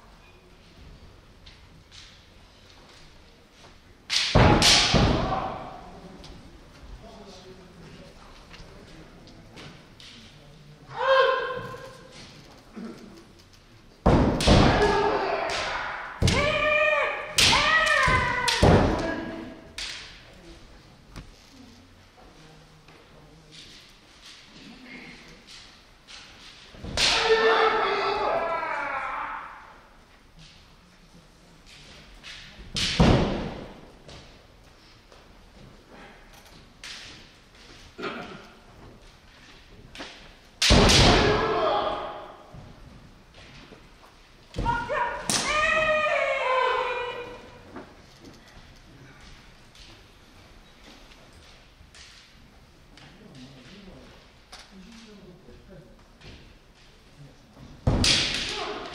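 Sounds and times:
loud kiai shouts: 4.5s - 6.0s, 10.9s - 12.1s, 14.4s - 19.7s, 26.9s - 30.0s, 40.7s - 42.5s, 44.5s - 47.6s, 58.1s - 58.9s.

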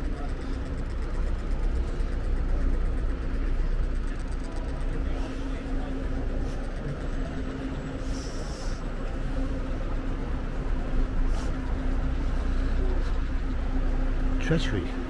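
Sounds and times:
constant low hum: 0.0s - 15.0s
traffic rumble: 0.0s - 15.0s.

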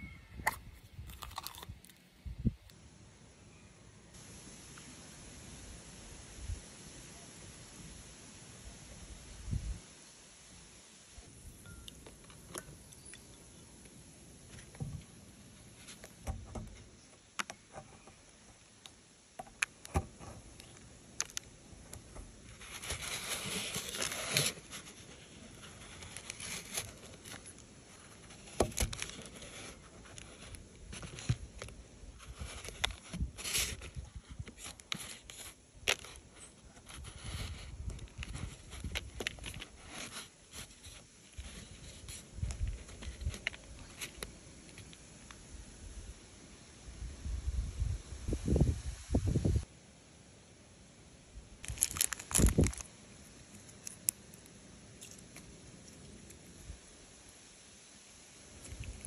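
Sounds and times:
plastic packet tearing and crinkling: 0.4s - 2.0s, 51.6s - 52.9s
faint handling noise: 11.5s - 45.5s.

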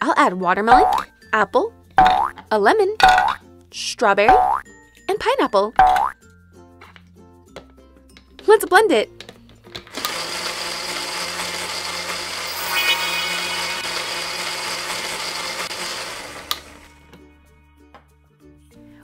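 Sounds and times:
blender running: 9.9s - 17.1s.

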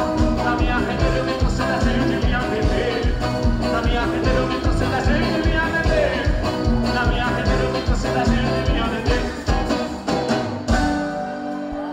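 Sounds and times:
live band music: 0.0s - 11.9s.

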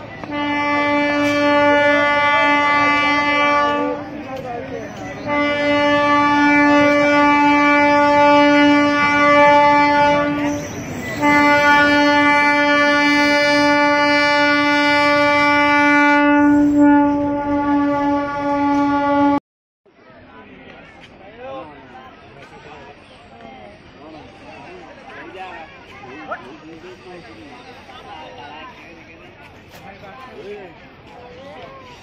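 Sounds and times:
locomotive air horn blasts: 0.2s - 4.2s, 5.2s - 19.4s.

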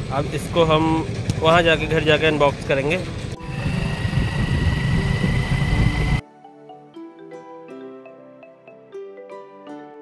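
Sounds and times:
motorcycle engine running: 0.0s - 6.2s
wind rumble on microphone: 3.3s - 6.2s
faint high whine: 3.4s - 6.2s.

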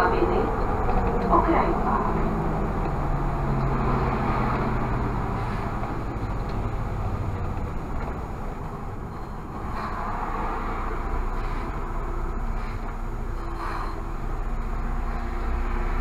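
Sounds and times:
bus engine: 0.0s - 16.0s
road noise: 0.0s - 16.0s.

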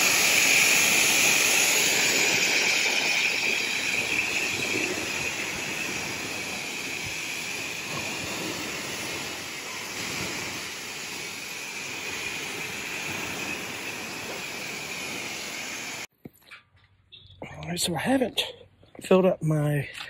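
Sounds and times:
pressure washer spraying water: 0.0s - 16.1s
thin high tone: 0.0s - 16.1s.

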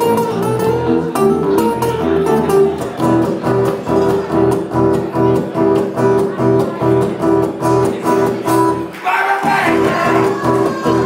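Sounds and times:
acoustic guitar plucking and strumming: 0.0s - 11.0s.

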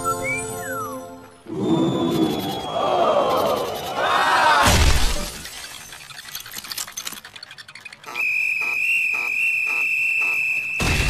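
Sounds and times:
high whistling tone: 0.0s - 3.9s, 8.1s - 11.0s
cartoon smash with shattering: 4.6s - 6.0s, 10.8s - 11.0s.

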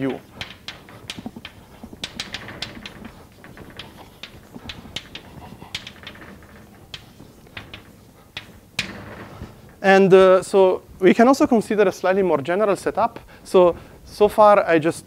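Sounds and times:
chalk tapping and scraping: 0.0s - 9.8s.

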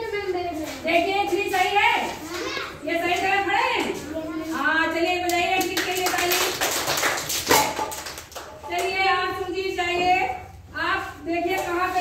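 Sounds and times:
children calling out: 2.2s - 2.8s
hand clapping: 5.3s - 9.0s.

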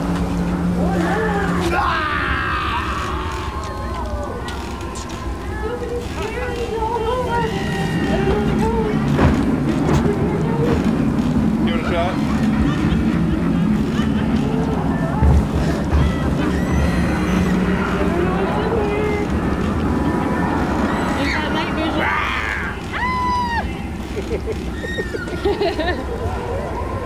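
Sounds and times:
indistinct voices: 0.0s - 27.0s
low droning rumble: 0.0s - 27.0s.

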